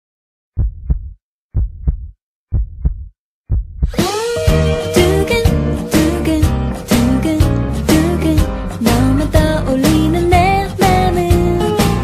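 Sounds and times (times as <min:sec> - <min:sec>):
heartbeat double thumps: 0:00.6 - 0:04.2.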